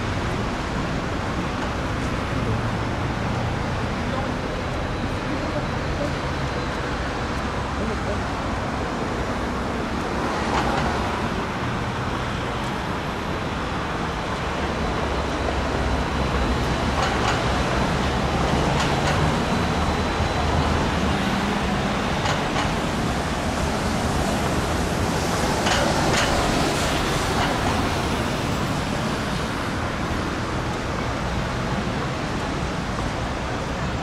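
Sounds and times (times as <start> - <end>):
road traffic noise: 0.0 - 34.0.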